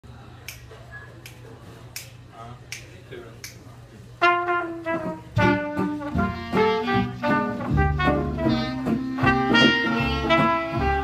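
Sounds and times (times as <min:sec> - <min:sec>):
finger snaps: 0:00.4 - 0:03.6.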